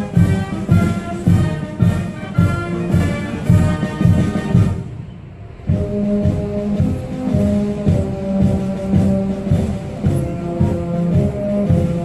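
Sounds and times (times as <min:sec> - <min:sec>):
heavy drum beats: 0:00.0 - 0:04.9, 0:05.5 - 0:12.0
low held brass notes: 0:00.0 - 0:12.0.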